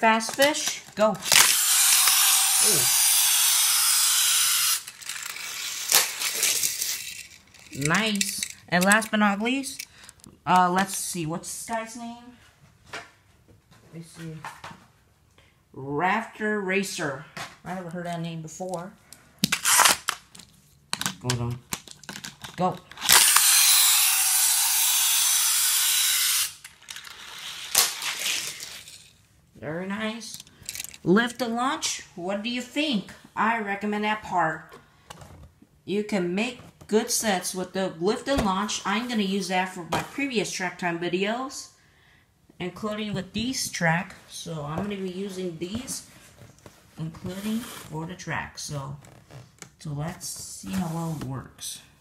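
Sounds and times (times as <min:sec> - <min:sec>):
toy car rattling along plastic track: 0:00.3 - 0:10.2, 0:21.7 - 0:29.2, 0:30.3 - 0:31.0
mechanical whir of toy launcher: 0:01.2 - 0:09.1, 0:19.5 - 0:20.2, 0:23.0 - 0:29.1.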